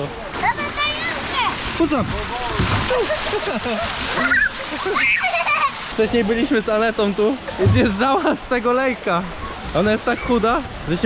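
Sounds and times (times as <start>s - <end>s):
rush of water: 0.0s - 11.0s
water splashing into pool: 0.2s - 6.0s, 7.4s - 8.5s.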